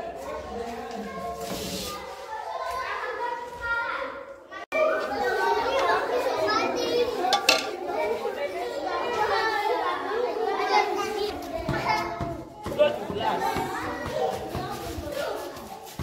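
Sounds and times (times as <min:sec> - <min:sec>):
young children talking and calling out: 0:00.0 - 0:16.0.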